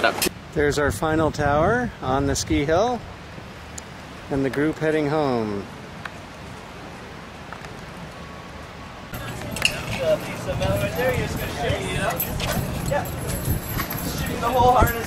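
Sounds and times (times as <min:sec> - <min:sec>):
people chattering: 0:09.1 - 0:15.0
metallic carabiner clinks: 0:09.2 - 0:15.0.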